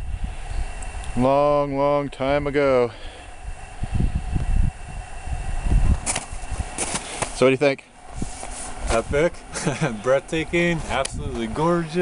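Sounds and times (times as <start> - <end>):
wind buffeting microphone: 0.0 - 7.4, 8.0 - 12.0
sharp rustles: 5.9 - 7.4.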